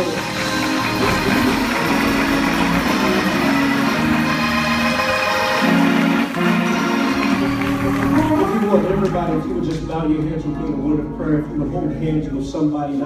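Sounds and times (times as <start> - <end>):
people clapping along: 0.0 - 10.4
church music held chords: 0.0 - 13.0.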